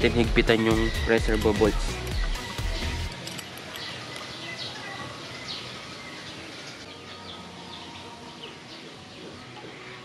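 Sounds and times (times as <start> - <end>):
steady outdoor hiss: 0.0 - 10.0
small birds chirping: 0.4 - 10.0.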